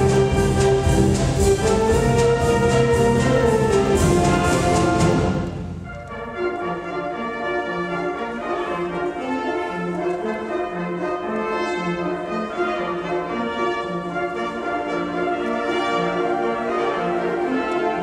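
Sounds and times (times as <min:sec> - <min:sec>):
concert band playing chords: 0:00.0 - 0:06.1.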